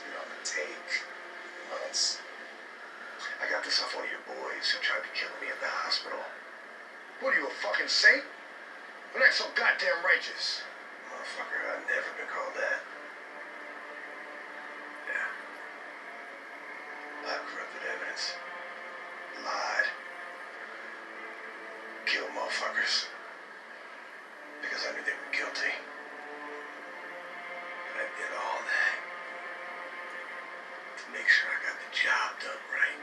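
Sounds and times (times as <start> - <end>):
low hum: 0.0 - 33.0
television speaker hiss: 0.0 - 33.0.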